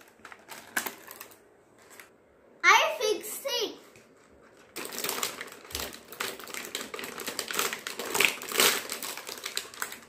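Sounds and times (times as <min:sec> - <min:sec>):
wrapping crinkling: 0:00.0 - 0:02.2, 0:04.0 - 0:10.0.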